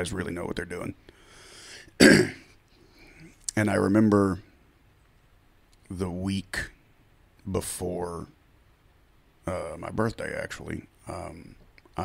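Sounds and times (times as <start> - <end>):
man clearing his throat: 2.0 - 2.5.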